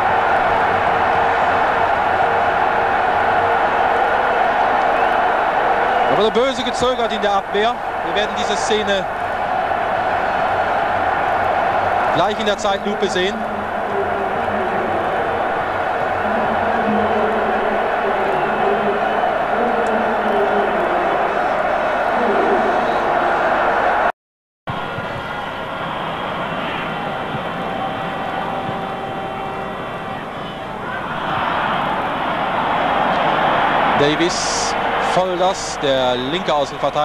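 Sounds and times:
stadium crowd murmur: 0.0s - 24.1s, 24.7s - 37.0s.

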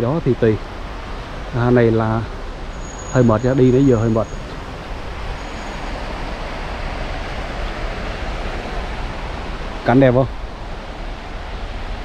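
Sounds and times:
sea surf rushing: 0.0s - 12.0s.

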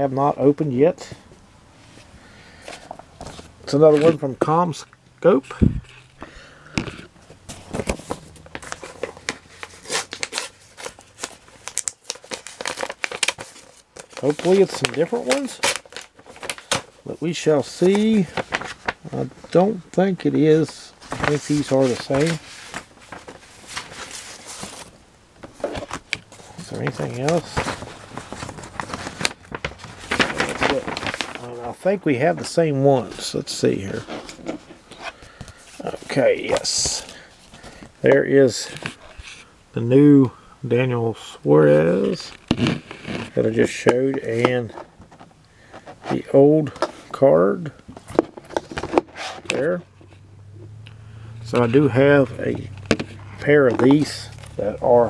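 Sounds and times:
paper envelope crinkling: 2.5s - 4.4s, 7.0s - 38.0s, 51.5s - 55.0s
paper tearing: 26.7s - 31.5s.

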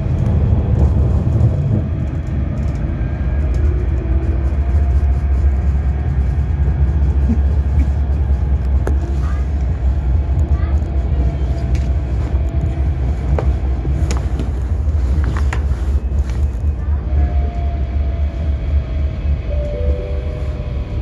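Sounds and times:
tram rumbling on track: 0.0s - 21.0s.

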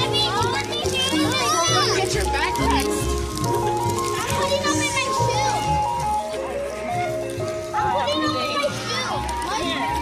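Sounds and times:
children's voices calling: 0.0s - 10.0s.

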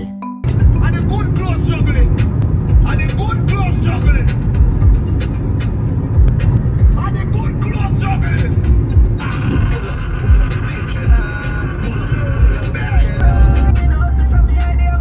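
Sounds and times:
music on car stereo: 0.0s - 15.0s
road noise: 0.4s - 15.0s.

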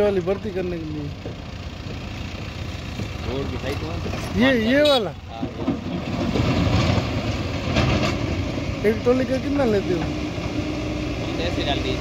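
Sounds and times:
heavy diesel engine running: 0.0s - 12.0s.

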